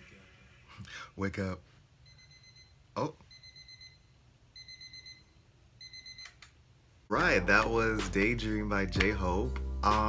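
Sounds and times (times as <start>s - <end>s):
alarm clock beeping: 2.0s - 6.4s.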